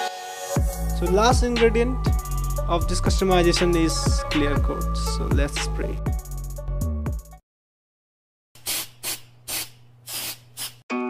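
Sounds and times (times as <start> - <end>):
music: 0.0 - 7.4
spray can hissing: 8.6 - 10.8.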